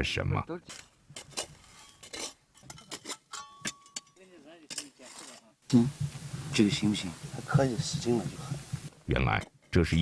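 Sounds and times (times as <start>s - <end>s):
metal pick scraping gravelly soil: 0.6s - 9.8s.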